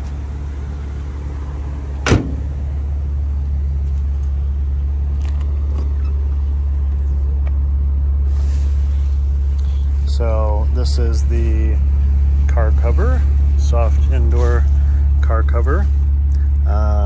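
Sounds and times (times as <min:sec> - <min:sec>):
steady low hum: 0:00.0 - 0:17.0
car door shutting: 0:02.0 - 0:02.7.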